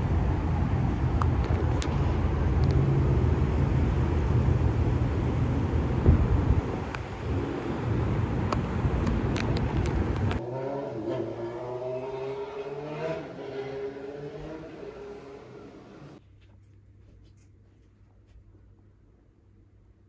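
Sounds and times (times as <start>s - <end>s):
wind buffeting microphone: 4.5s - 10.4s.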